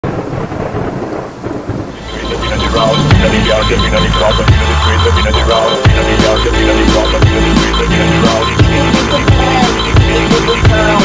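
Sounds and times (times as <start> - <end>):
rolling thunder rumble: 0.0 - 3.4.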